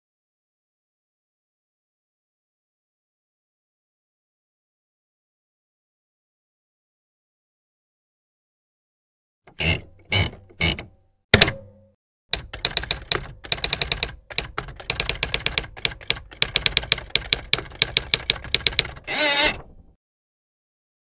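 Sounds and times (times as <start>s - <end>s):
typewriter rasp: 9.5s - 11.7s, 12.3s - 19.7s
typewriter key clacks: 9.5s - 19.1s.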